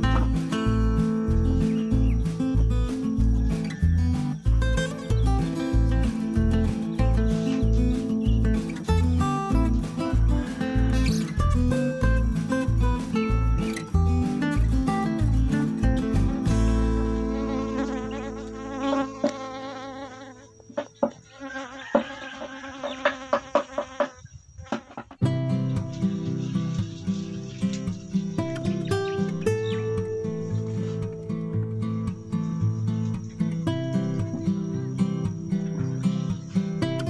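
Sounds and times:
background music with beat: 0:00.0 - 0:17.2
bees buzzing: 0:15.0 - 0:25.3
knocks on wooden hive box: 0:21.8 - 0:25.2.

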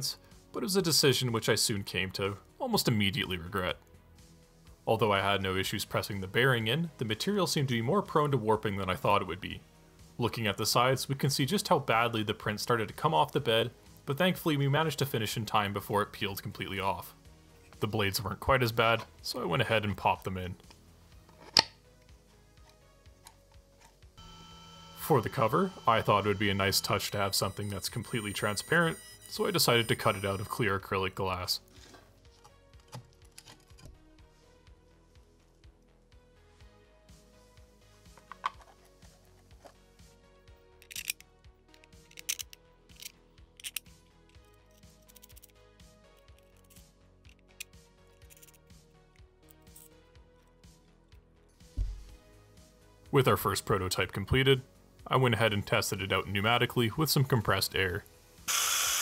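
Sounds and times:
background music: 0:00.0 - 0:59.0
plastic parts clicking and snapping: 0:21.3 - 0:21.8, 0:32.4 - 0:34.0, 0:38.2 - 0:38.8, 0:40.8 - 0:43.9, 0:44.8 - 0:45.5.

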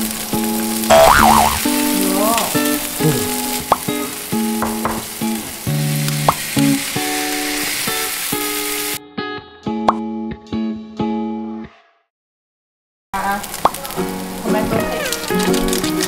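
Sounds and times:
food sizzling in a frying pan: 0:00.0 - 0:09.0, 0:13.2 - 0:16.0.

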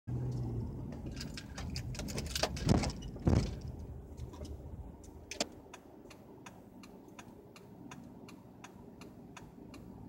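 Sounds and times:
road and engine noise: 0:00.0 - 0:10.0
car wheels thumping over bump: 0:00.9 - 0:04.6.

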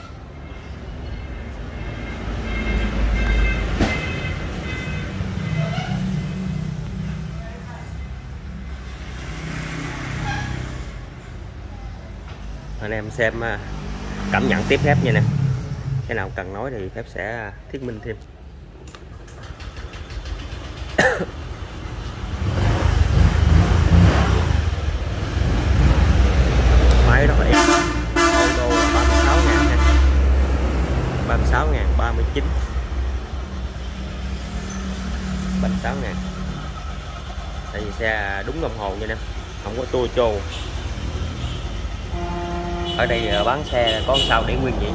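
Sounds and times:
motorbike engine idling: 0:19.1 - 0:22.4.

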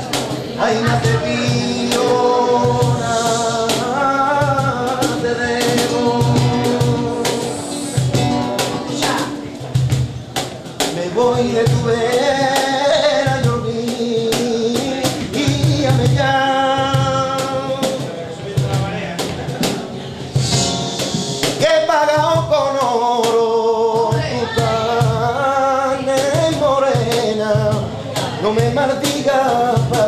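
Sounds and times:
flamenco guitar: 0:00.0 - 0:30.0
man singing flamenco: 0:00.0 - 0:30.0.

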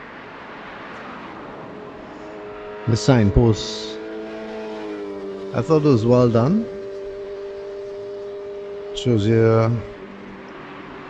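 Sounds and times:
faint traffic: 0:00.0 - 0:11.0.

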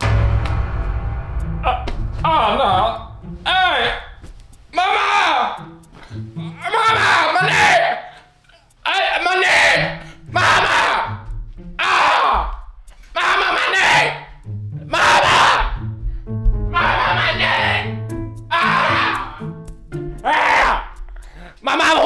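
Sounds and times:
man yelling loudly: 0:02.3 - 0:04.2, 0:04.8 - 0:05.6, 0:06.5 - 0:08.2, 0:08.8 - 0:11.2, 0:13.2 - 0:14.2, 0:16.8 - 0:17.9, 0:18.5 - 0:19.4, 0:21.6 - 0:22.0
background music with bass line: 0:14.3 - 0:21.3.

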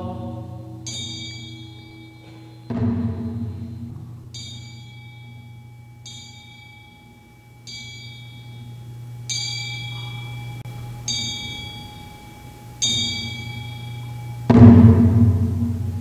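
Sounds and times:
low continuous rumble: 0:00.0 - 0:16.0
metal bell strikes ringing: 0:00.0 - 0:16.0.

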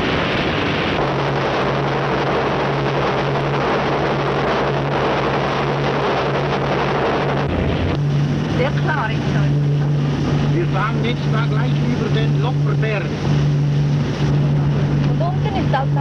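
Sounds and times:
airship engines droning: 0:00.0 - 0:16.0
loud rushing noise: 0:00.0 - 0:16.0.

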